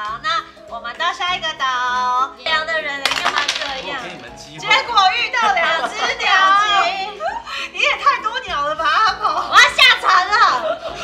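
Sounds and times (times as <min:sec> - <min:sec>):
women exclaiming and laughing: 0:04.7 - 0:11.0.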